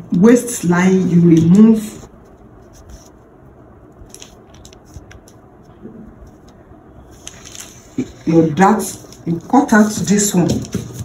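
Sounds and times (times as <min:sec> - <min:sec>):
light taps on paper: 0:09.8 - 0:11.0.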